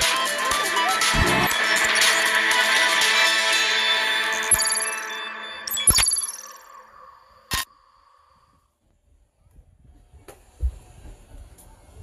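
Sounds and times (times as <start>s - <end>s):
electronic jingle: 1.1s - 1.6s.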